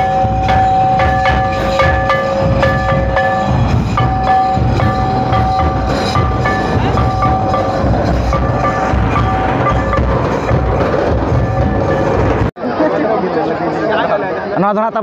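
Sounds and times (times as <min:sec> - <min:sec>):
held melodic tones: 0:00.0 - 0:12.5
steady drum beat: 0:00.0 - 0:12.5
sustained drone: 0:00.0 - 0:12.5.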